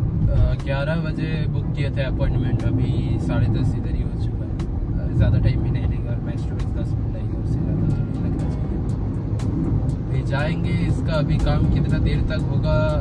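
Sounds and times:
road and tyre rumble in car: 0:00.0 - 0:13.0.

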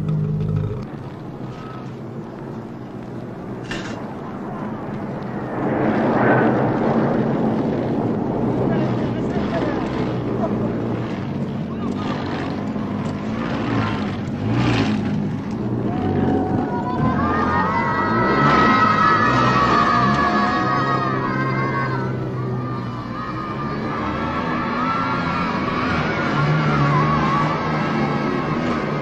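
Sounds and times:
motor truck engine running: 0:00.0 - 0:05.2, 0:06.8 - 0:29.0
voices: 0:03.7 - 0:29.0.

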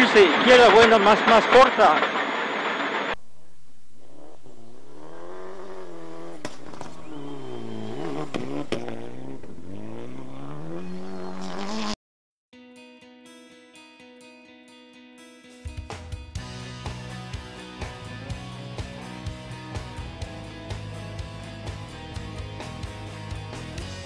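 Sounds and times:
car engine revving: 0:03.9 - 0:12.0
music: 0:12.5 - 0:24.0.

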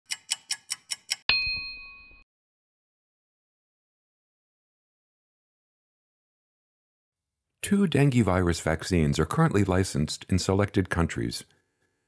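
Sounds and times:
clock-tick clicks: 0:00.1 - 0:01.3
bright bell-like ding: 0:01.3 - 0:02.2.

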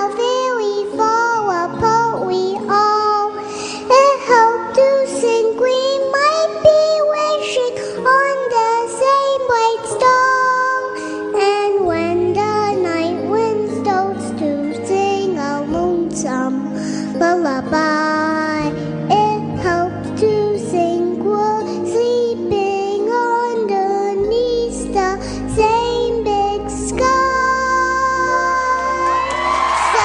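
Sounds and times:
girl singing into microphone: 0:00.0 - 0:30.0.

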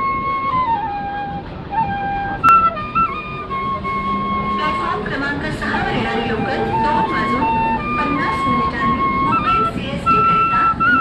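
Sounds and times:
bamboo flute melody: 0:00.0 - 0:11.0
voices and crowd bustle: 0:00.0 - 0:11.0.

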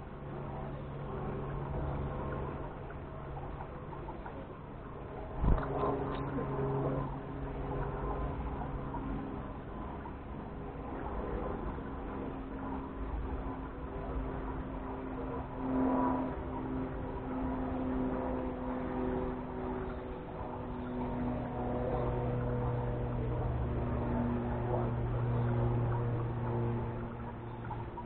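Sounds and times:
deeper hum: 0:00.0 - 0:11.8, 0:12.5 - 0:28.0
motor humming: 0:15.6 - 0:28.0.

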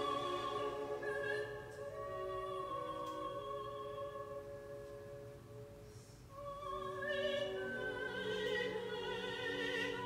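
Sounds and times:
opera music from vinyl record: 0:00.0 - 0:10.0.

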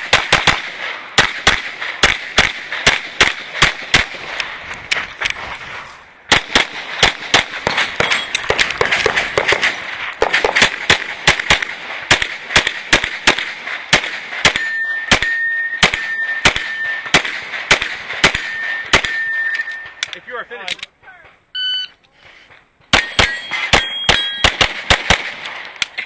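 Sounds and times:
pistol shots: 0:00.0 - 0:05.1, 0:06.3 - 0:20.2, 0:22.9 - 0:26.0
steady high tone: 0:14.6 - 0:17.1.

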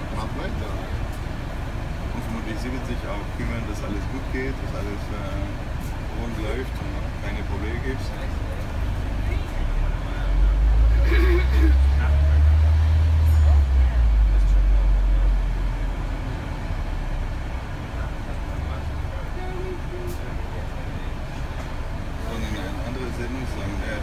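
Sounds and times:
bus engine rumbling: 0:00.0 - 0:24.0.

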